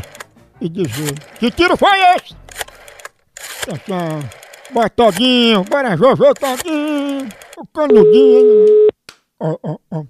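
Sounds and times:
man talking: 0.6s - 2.4s, 3.7s - 8.7s.

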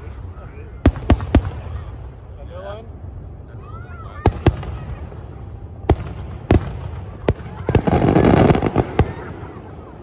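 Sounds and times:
low fireworks rumble: 0.0s - 10.0s
fireworks bangs: 0.2s - 2.1s, 4.2s - 10.0s.

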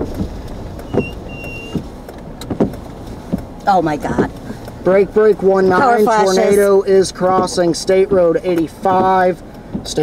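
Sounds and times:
brief thumps: 0.0s - 3.5s
road and engine rumble: 0.0s - 10.0s.

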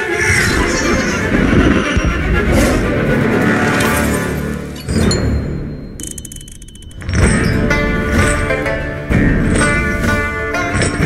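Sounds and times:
loud rushing rumble: 0.0s - 4.8s.

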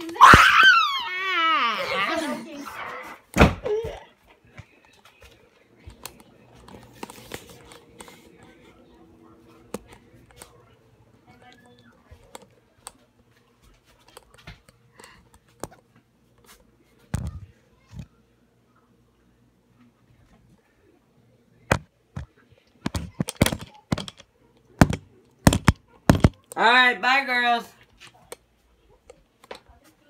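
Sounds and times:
person wailing: 0.1s - 2.5s
faint knocks and clicks: 21.7s - 26.6s.

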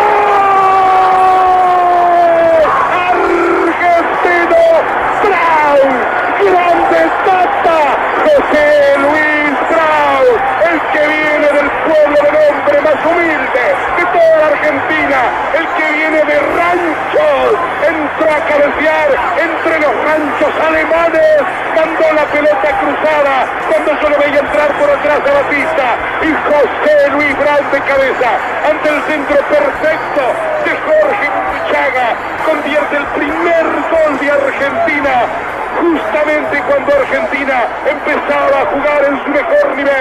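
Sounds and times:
drawn-out goal shout: 0.0s - 26.8s
excited radio football commentary: 0.0s - 40.0s
stadium crowd: 0.0s - 40.0s.

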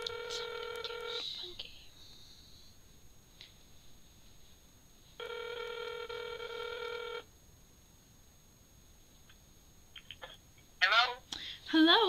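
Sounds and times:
phone ringback tone: 0.0s - 1.2s, 5.2s - 7.3s.

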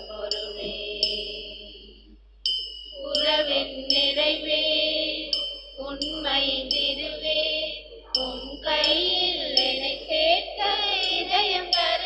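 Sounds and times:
person singing: 0.0s - 1.9s, 3.0s - 12.0s
sustained instrument tones: 2.8s - 12.0s.

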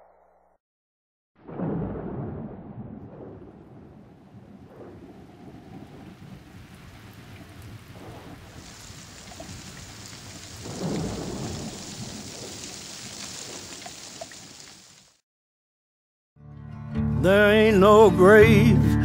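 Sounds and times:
rolling thunder: 1.4s - 13.9s
steady rain: 3.1s - 15.2s.

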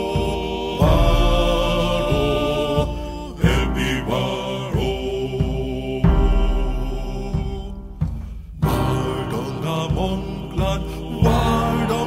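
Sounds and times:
chant-like melody with gliding pitch: 0.0s - 8.0s, 8.6s - 12.0s
deep bass notes: 0.8s - 4.1s, 4.8s - 10.6s.

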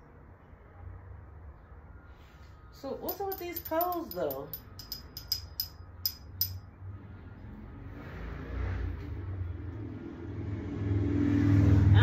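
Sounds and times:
metal tubes clicking: 3.1s - 6.6s.

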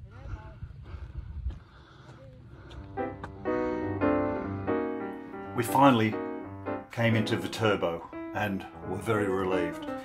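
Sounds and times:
wind rumble on microphone: 0.0s - 2.7s
piano background music: 2.8s - 10.0s.

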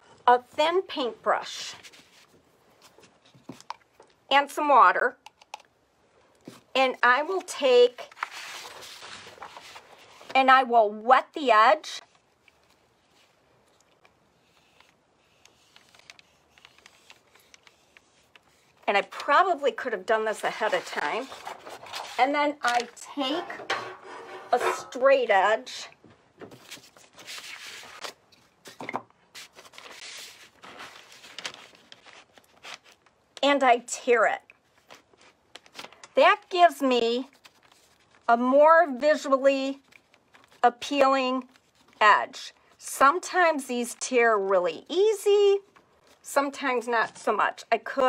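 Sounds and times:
paper rustling on table: 1.7s - 3.7s, 7.3s - 10.4s, 12.0s - 19.4s, 20.5s - 24.8s, 26.4s - 33.2s, 34.7s - 36.0s, 37.3s - 38.2s
rustling scrape on paper: 8.0s - 10.4s, 20.5s - 22.2s, 23.4s - 24.9s, 26.6s - 28.8s, 29.4s - 33.0s.

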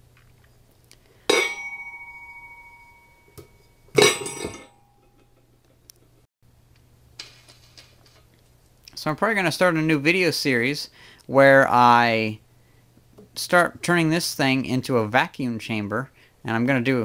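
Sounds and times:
metal lid clanking on canister: 3.9s - 4.8s.

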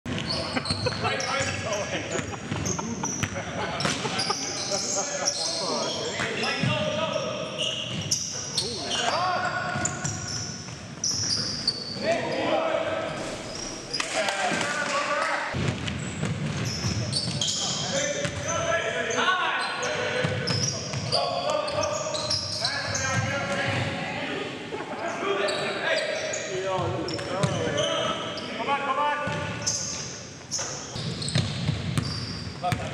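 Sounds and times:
sneakers squeaking: 0.1s - 14.2s, 15.1s - 24.0s, 25.0s - 32.9s
basketball bouncing on wooden floor: 31.1s - 32.1s.

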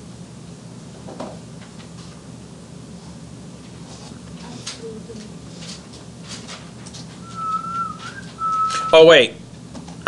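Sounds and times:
person whistling: 7.2s - 9.0s.

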